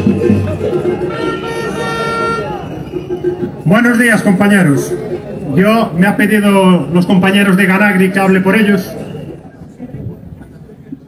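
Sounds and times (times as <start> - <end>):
crowd voices: 0.0 - 11.0
horn held tone: 0.8 - 3.5.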